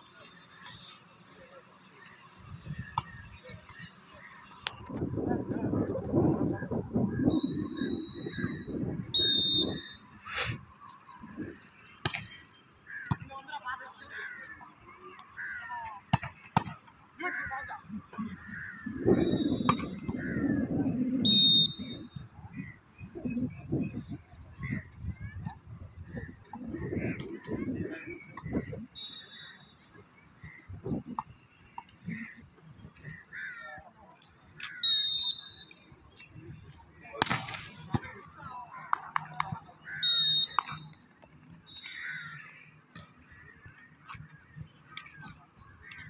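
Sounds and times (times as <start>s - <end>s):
referee's whistle blast: 7.3s - 10.1s, 21.2s - 22.1s, 34.8s - 35.7s, 40.0s - 40.8s
ball strike: 12.0s - 12.3s, 19.6s - 20.3s, 37.1s - 38.1s.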